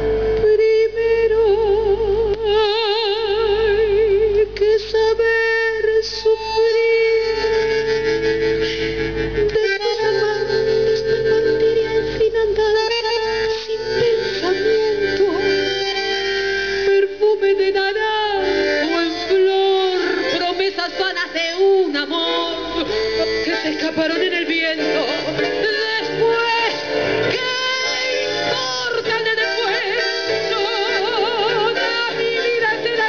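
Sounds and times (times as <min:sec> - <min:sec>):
double bass: 0:00.0 - 0:33.0
bandoneons playing tango: 0:05.1 - 0:33.0.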